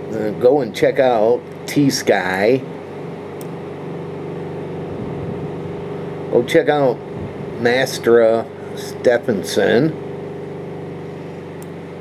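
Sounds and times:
motor humming: 0.0 - 12.0.

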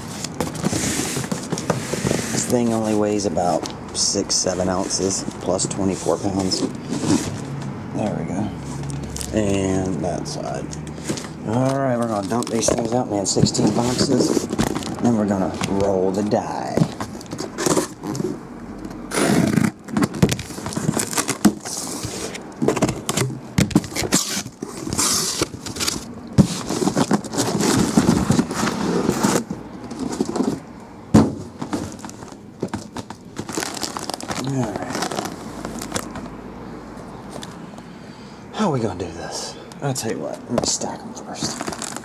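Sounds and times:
cardboard scraping and rustling: 0.0 - 7.6, 10.4 - 18.4, 19.1 - 36.3, 41.4 - 42.0
boxes knocking on table: 30.2 - 33.7.

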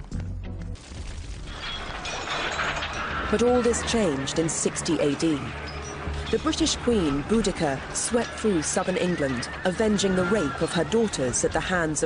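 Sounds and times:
fire crackling: 0.0 - 12.0.

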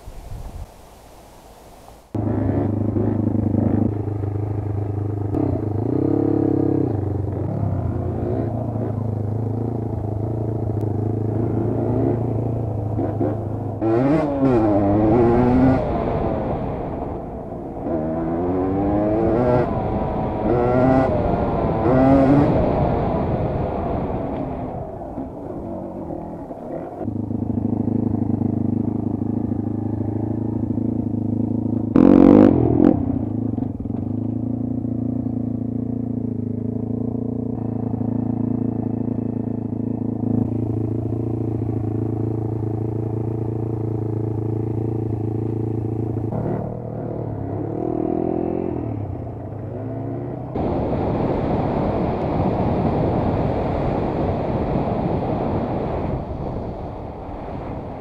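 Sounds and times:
dirt bike engine revving: 2.2 - 34.0, 45.9 - 53.5.

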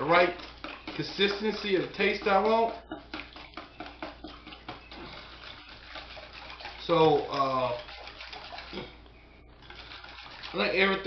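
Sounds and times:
whisk beating liquid in metal bowl: 0.0 - 8.8, 9.6 - 11.0.

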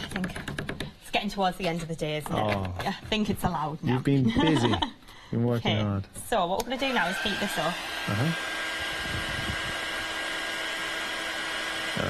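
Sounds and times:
heat tool fan whining: 6.4 - 12.0.

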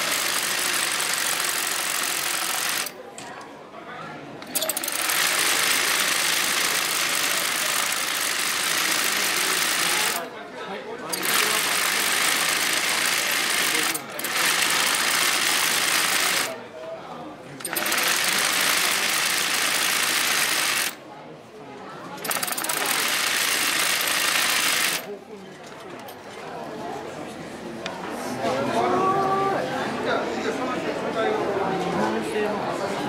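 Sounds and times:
embroidery sewing machine running: 0.0 - 2.9, 4.6 - 10.3, 11.1 - 16.6, 17.6 - 21.0, 22.2 - 25.1.

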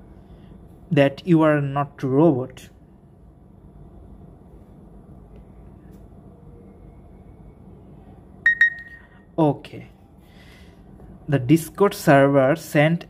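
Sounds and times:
phone notification beep: 8.5 - 9.1.

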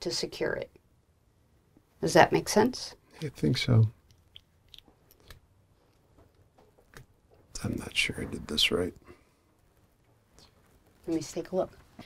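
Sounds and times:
faint clicks and rustles: 4.0 - 12.0.

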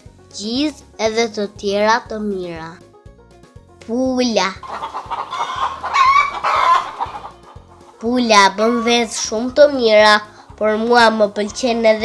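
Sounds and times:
hens clucking: 4.6 - 9.4.

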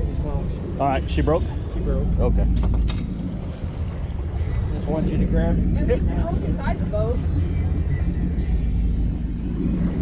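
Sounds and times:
boat motor rumble: 0.0 - 10.0.

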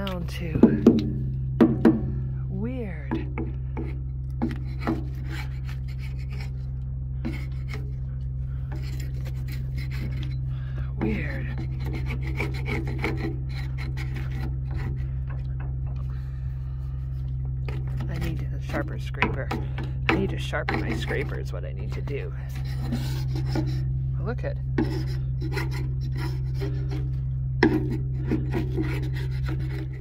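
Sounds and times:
steady low hum: 0.0 - 30.0
paint scraper scraping metal: 3.7 - 15.7, 17.1 - 30.0.

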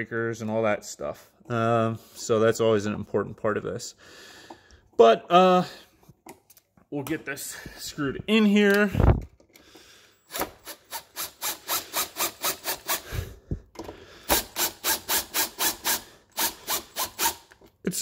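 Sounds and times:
impact driver driving screw: 10.3 - 13.2, 13.8 - 17.6.

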